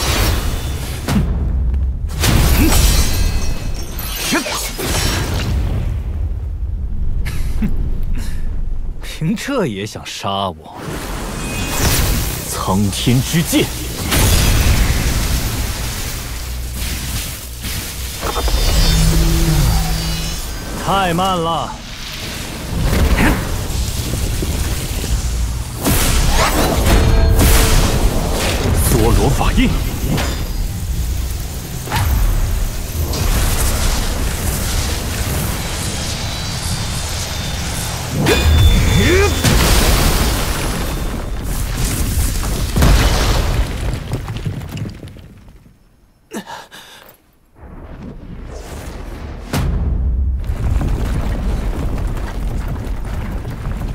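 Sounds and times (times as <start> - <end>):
deep booms and blasts: 0.0 - 3.6, 4.7 - 9.0, 13.2 - 44.8, 47.6 - 53.9
thunder rumbling: 21.6 - 41.8
heavy impacts: 22.8 - 35.8.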